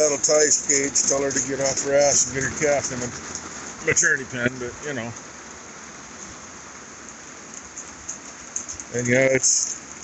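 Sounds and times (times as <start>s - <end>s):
raindrops ticking: 0.0s - 5.6s, 6.2s - 10.0s
steady rain hiss: 0.0s - 10.0s.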